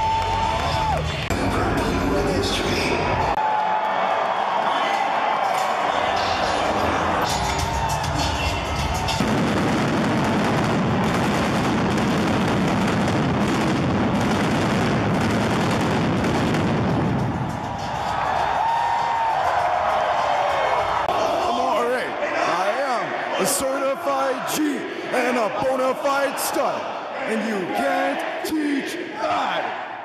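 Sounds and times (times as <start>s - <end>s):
loud arena music over speakers: 0.0s - 3.4s, 5.8s - 12.3s, 15.4s - 21.2s
pyrotechnic bangs and crackle: 8.9s - 18.7s.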